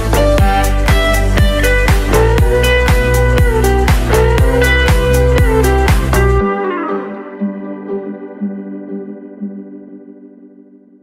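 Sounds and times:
sustained electronic keyboard chord: 0.0s - 11.0s.

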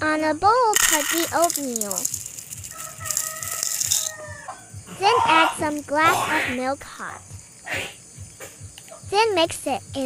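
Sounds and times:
oats pouring into a bowl: 0.8s - 4.2s.

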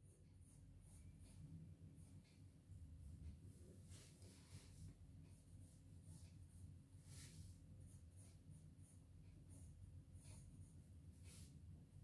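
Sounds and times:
low steady hum: 0.0s - 12.0s
pencil scratching on paper: 0.0s - 12.0s.

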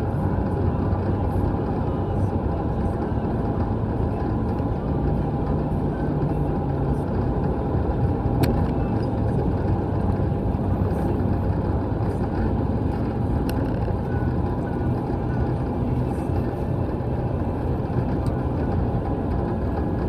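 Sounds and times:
car engine and road noise: 0.0s - 20.0s
sharp click: 8.4s - 8.8s.

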